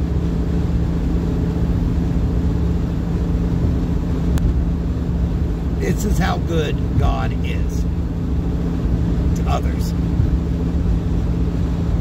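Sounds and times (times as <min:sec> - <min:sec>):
car road noise at highway speed: 0:00.0 - 0:12.0
constant low hum: 0:00.0 - 0:12.0.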